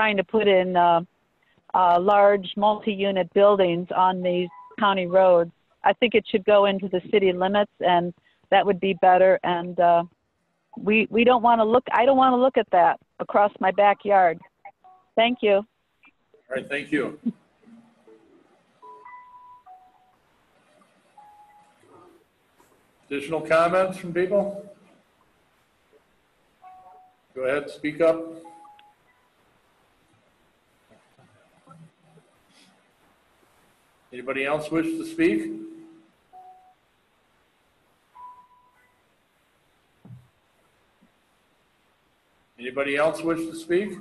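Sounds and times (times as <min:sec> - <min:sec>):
electronic beeps: 0:04.2 - 0:05.3, 0:17.6 - 0:20.2, 0:21.2 - 0:22.2, 0:26.6 - 0:27.2, 0:28.0 - 0:29.3, 0:38.2 - 0:39.0
short electronic beeps: 0:18.8 - 0:20.1, 0:38.2 - 0:38.9.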